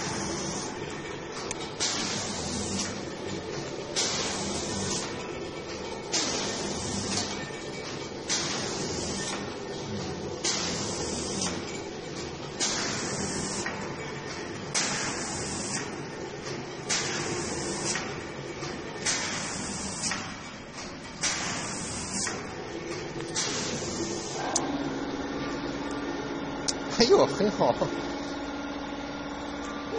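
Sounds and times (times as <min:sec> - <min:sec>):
machine mechanical hum: 0:00.0 - 0:29.9.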